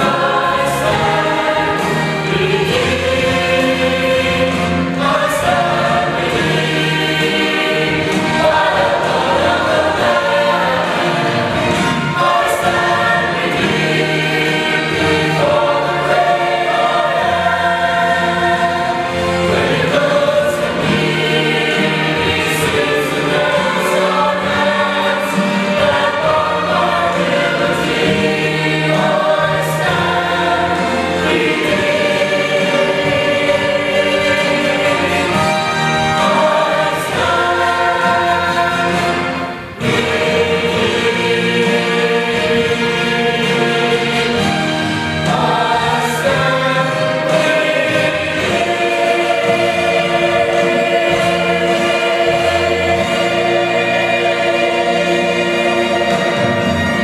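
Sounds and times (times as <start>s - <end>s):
choir singing gospel: 0.0s - 57.0s.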